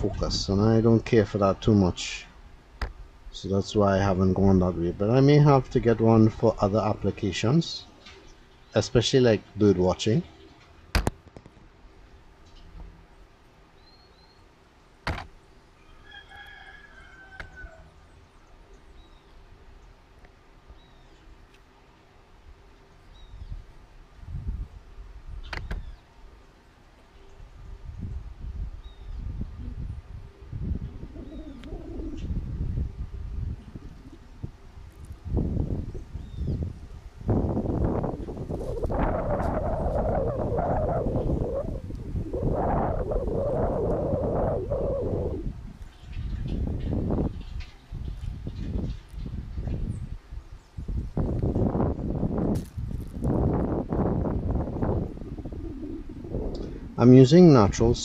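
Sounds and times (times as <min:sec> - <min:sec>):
wind buffeting microphone: 0:00.0 - 0:07.7, 0:23.1 - 0:26.0, 0:27.4 - 0:58.0.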